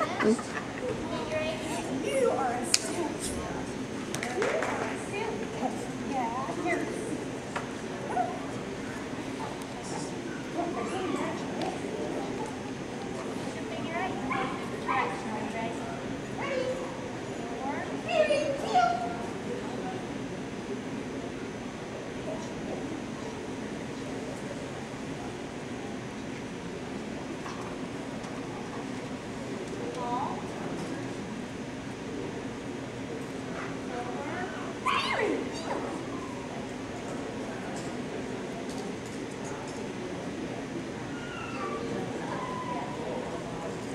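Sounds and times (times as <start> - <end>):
background talk: 0.0 - 43.9
murmur of voices: 0.0 - 43.9
dog whining: 41.1 - 43.0.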